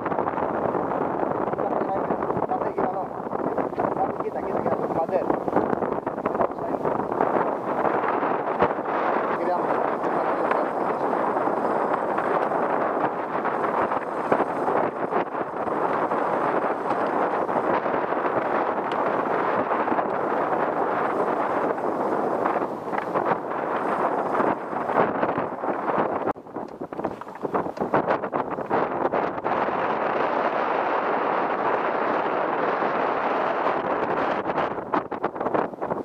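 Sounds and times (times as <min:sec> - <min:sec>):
wind buffeting microphone: 0:00.0 - 0:36.0.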